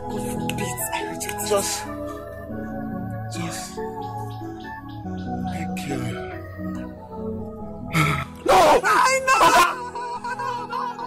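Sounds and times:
sustained organ music: 0.0 - 11.0
woman wailing in grief: 8.6 - 11.0.

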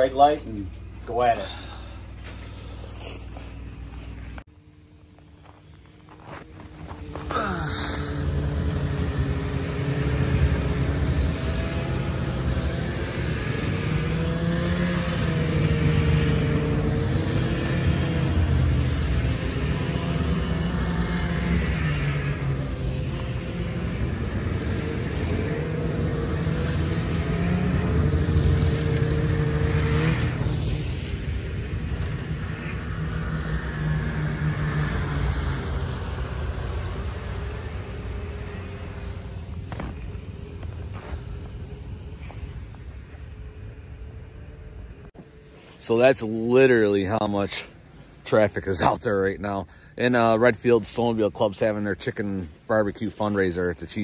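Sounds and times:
snowmobiles riding past: 0.0 - 54.0.

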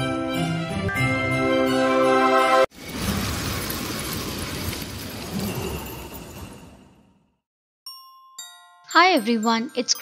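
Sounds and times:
bell-like chime notes: 7.9 - 10.0.

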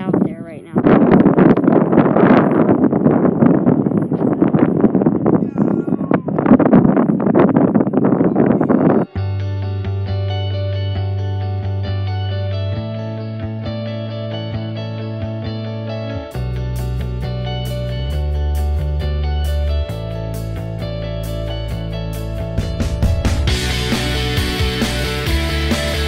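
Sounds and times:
gusty wind buffeting microphone: 0.0 - 9.2, 19.9 - 25.2
guitar chords music: 8.4 - 26.0.

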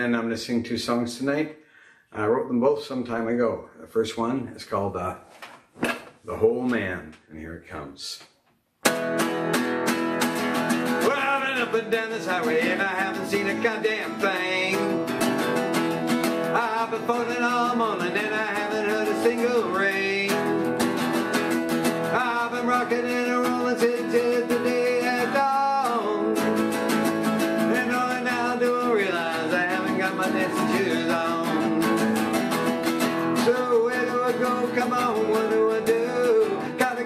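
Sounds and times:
acoustic guitar strumming: 8.8 - 37.0
harmonica melody: 8.9 - 37.0
person singing: 10.9 - 20.9, 22.0 - 37.0.

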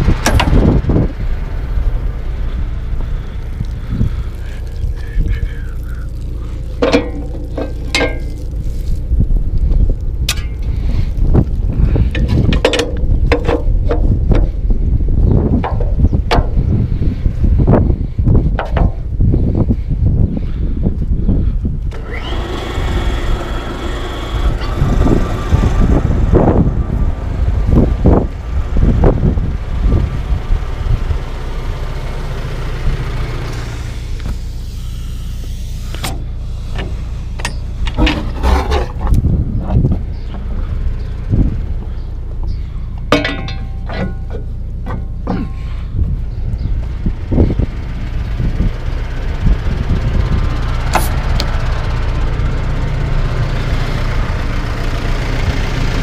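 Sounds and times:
steady low rumble: 0.0 - 56.0
metal knocks and clanks: 6.8 - 8.5, 12.1 - 14.6, 15.5 - 16.8, 18.5 - 19.1, 36.8 - 40.5, 43.0 - 45.8.

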